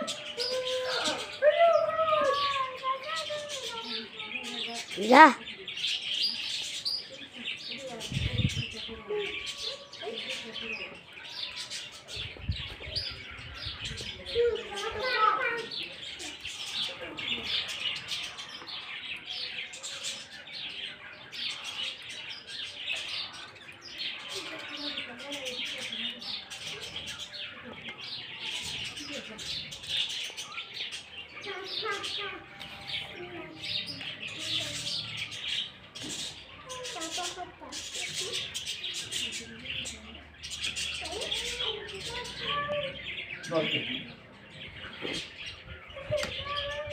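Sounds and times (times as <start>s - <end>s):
small birds chirping: 0.0s - 46.9s.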